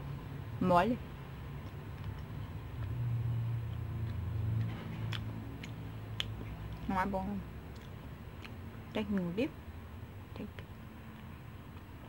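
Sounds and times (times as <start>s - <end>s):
low steady rumble: 0.0s - 12.0s
chewing dried fruit: 1.2s - 9.6s, 10.3s - 12.0s
sharp mouth clicks: 3.6s - 6.9s, 7.7s - 9.3s.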